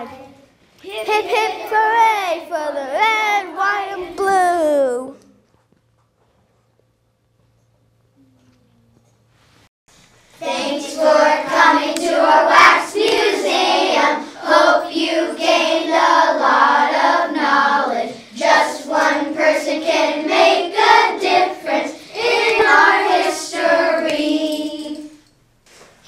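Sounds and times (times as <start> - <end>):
children singing in unison: 10.4 - 25.1.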